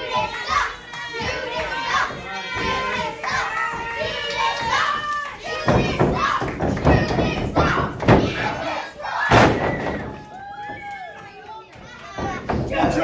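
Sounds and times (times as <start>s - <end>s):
crowd shouting: 0.0s - 13.0s.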